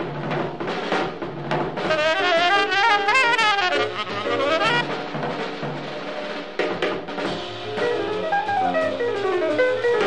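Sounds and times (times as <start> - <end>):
drum strokes: 0.0 - 10.0
piano: 0.0 - 10.0
walking double bass: 1.5 - 5.4
tenor saxophone run: 1.9 - 4.8.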